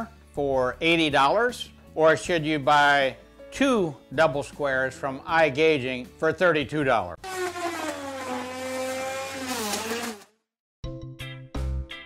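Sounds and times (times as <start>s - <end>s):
router motor whining: 7.2s - 10.3s.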